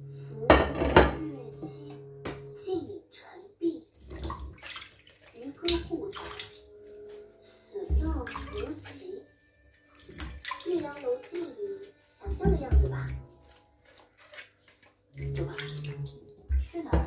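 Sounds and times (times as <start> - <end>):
water splashing and dripping: 3.8 - 17.0
fruit rubbed in pot of water: 7.8 - 16.8.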